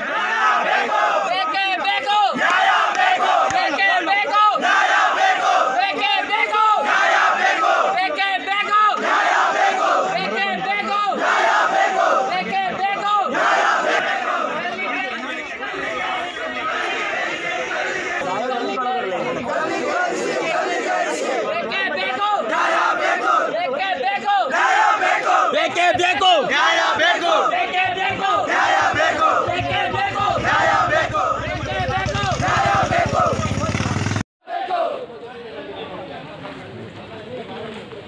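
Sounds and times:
crowd of men shouting angrily: 0.0s - 33.7s, 34.4s - 35.1s.

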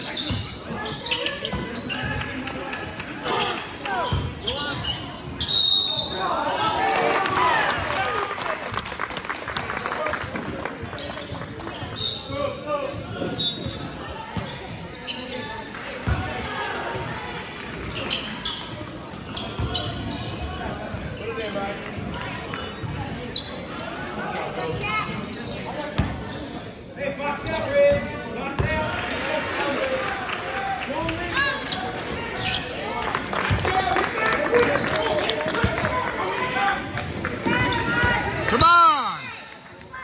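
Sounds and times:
echoing voices in gym: 0.0s - 40.0s.

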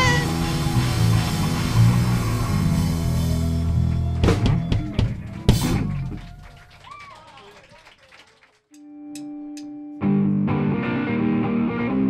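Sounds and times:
rock band chord ringing out: 0.0s - 3.9s.

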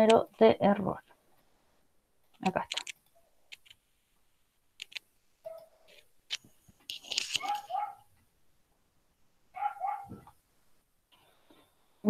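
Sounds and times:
small dog barking: 7.4s - 8.1s, 9.6s - 10.3s.

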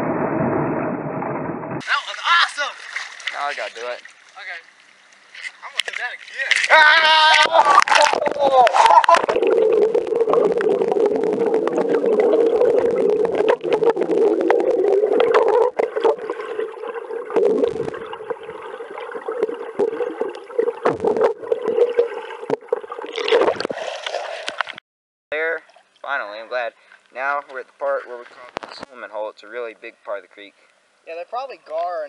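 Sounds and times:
muffled water gurgling and rushing: 0.0s - 1.8s, 7.7s - 24.8s.

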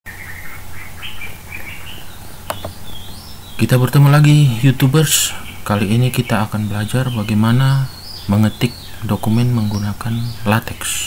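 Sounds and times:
birds chirping: 0.1s - 11.0s
low steady hum: 0.1s - 11.0s.

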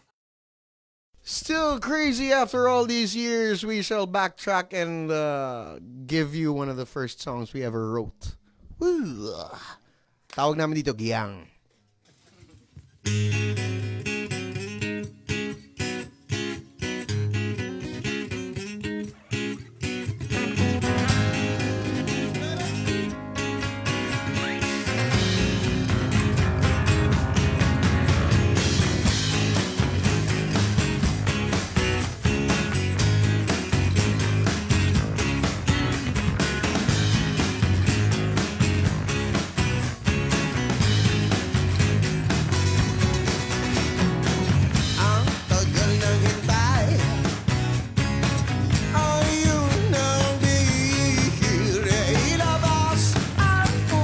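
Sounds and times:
acoustic guitars strumming chords: 13.0s - 54.0s
full rock band playing: 17.1s - 54.0s.

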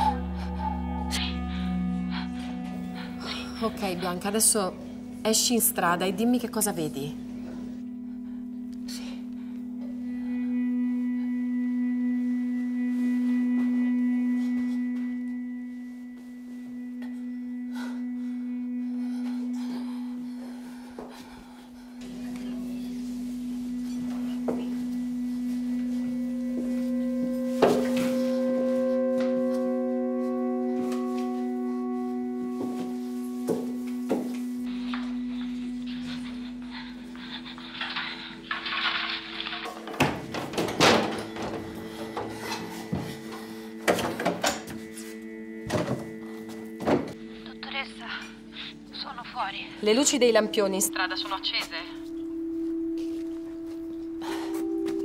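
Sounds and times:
higher sustained tones: 0.0s - 55.0s
low held drone: 0.0s - 55.0s.

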